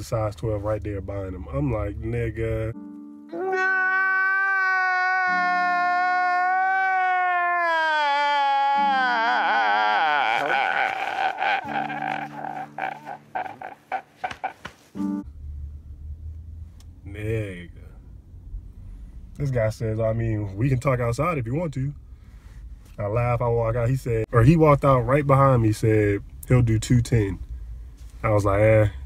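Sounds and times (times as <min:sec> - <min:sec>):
man wailing and sobbing: 0:03.3 - 0:14.7
background music: 0:08.7 - 0:14.4.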